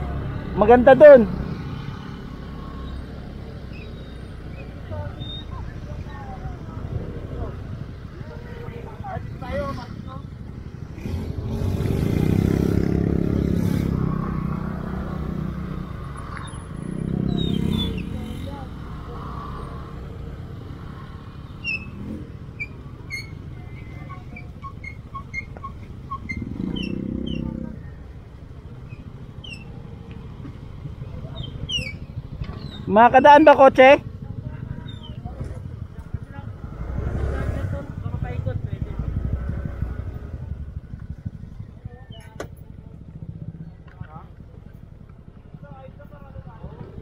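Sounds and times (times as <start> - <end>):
motor scooter engine rumbling: 0.0 - 47.0.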